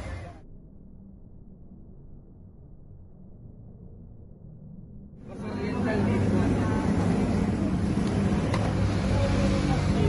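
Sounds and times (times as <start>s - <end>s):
people's voices: 5.2s - 10.0s.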